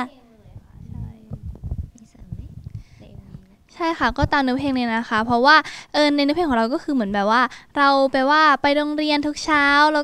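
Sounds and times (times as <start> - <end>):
microphone handling bumps and rustles: 0.5 - 5.5.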